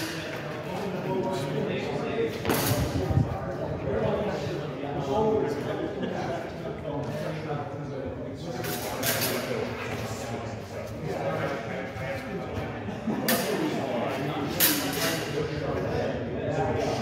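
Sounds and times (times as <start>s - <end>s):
background talking: 0.0s - 17.0s.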